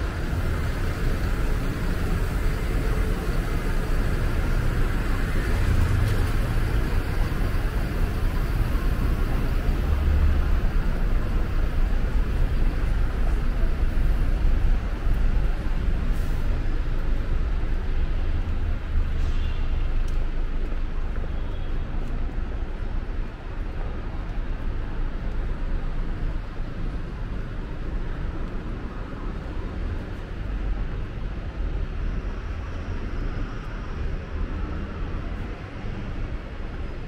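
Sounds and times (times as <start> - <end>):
road traffic low rumble: 0.0 - 37.0.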